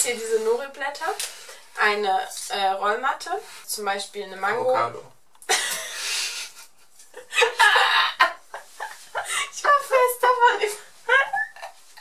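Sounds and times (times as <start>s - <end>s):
two people laughing: 5.5s - 9.6s.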